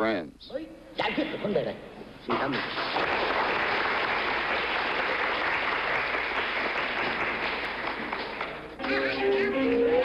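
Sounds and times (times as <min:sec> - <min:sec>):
group of people clapping: 0:02.3 - 0:09.5.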